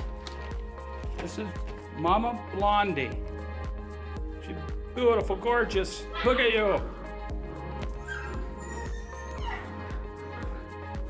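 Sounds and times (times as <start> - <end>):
background music with steady beat: 0.0 - 11.0
dog whimpering: 7.9 - 10.8.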